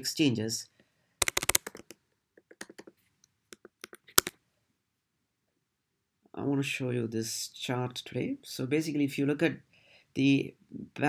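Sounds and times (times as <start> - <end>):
computer keyboard typing: 1.2 - 2.9, 3.6 - 4.3.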